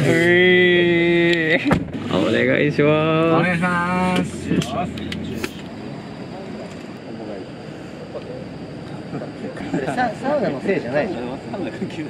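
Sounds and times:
car road noise: 0.0s - 9.3s.

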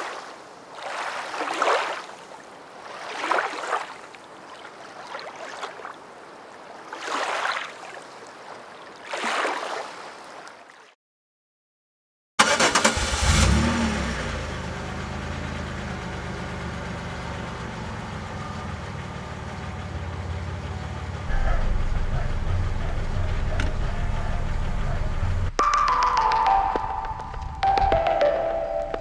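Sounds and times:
car engine starting and idling: 12.4s - 28.8s
music: 23.0s - 29.0s.

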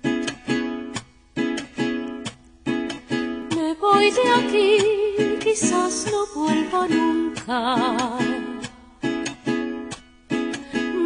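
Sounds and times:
woman singing: 3.4s - 8.9s, 10.6s - 11.0s.

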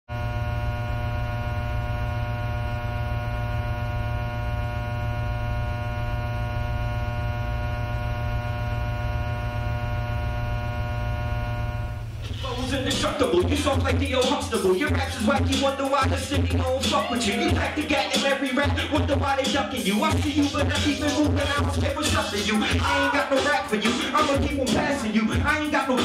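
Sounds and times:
electrical mains hum: 0.1s - 26.0s.

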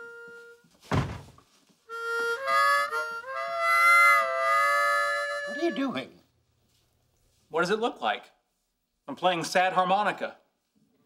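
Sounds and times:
harmonica chord: 0.0s - 0.8s, 1.9s - 6.2s
heavy thunk: 0.9s - 1.4s.

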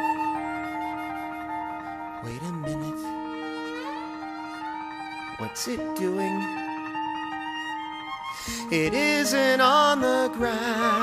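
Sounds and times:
flute playing: 0.0s - 11.0s.

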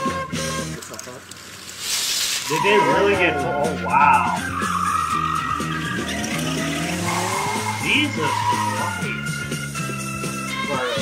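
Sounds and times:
tyres skidding on gravel: 0.0s - 11.0s
car engine revving: 2.8s - 11.0s.

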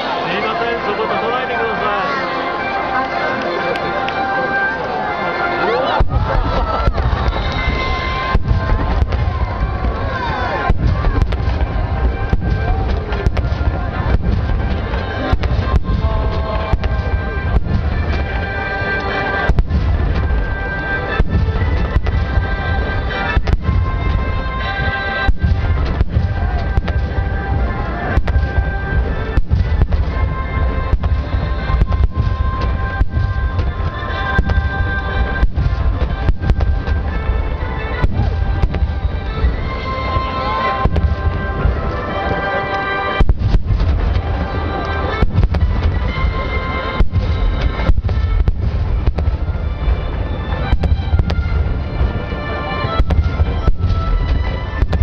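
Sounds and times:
fireworks bangs: 0.0s - 55.0s
show music: 0.0s - 55.0s.

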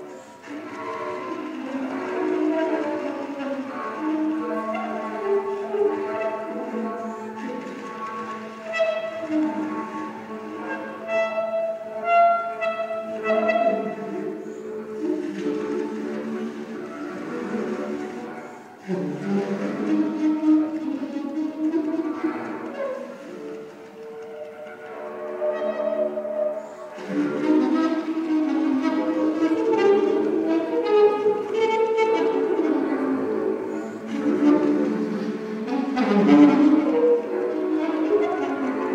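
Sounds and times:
alto saxophone sustained tones: 0.0s - 38.9s.

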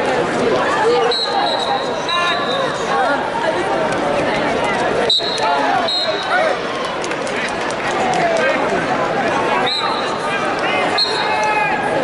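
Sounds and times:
crowd calling and shouting: 0.0s - 12.0s.

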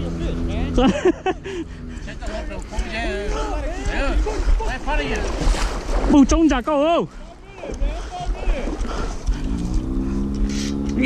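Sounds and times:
voices calling out: 0.0s - 11.0s
wind buffeting microphone: 1.4s - 11.0s
hiss of moving water: 10.4s - 10.9s.

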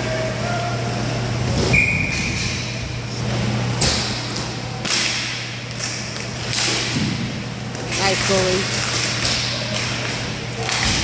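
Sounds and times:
steady hall hum: 0.0s - 11.0s.

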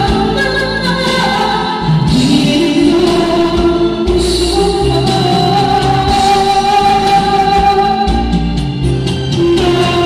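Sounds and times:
backing track: 0.0s - 10.0s
man singing a ballad: 1.8s - 8.2s.

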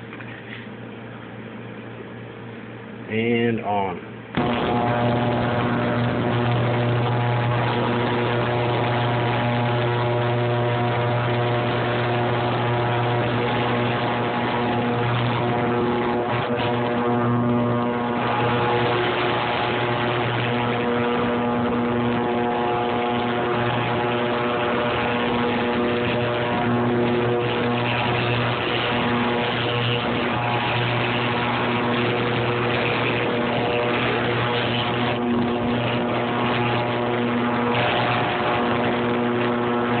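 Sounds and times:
ultrasonic cleaner humming: 3.3s - 40.0s.

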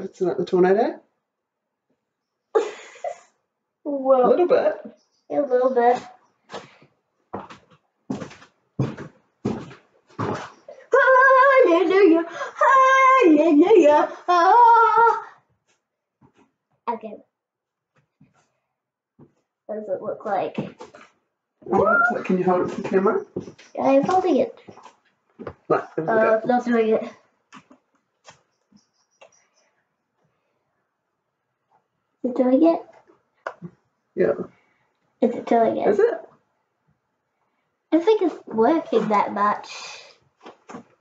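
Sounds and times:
high squeaks: 21.7s - 24.9s.

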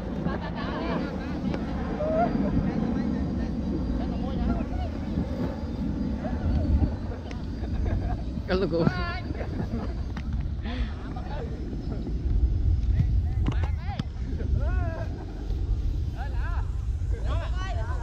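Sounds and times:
wind rumble on microphone: 0.0s - 18.0s.

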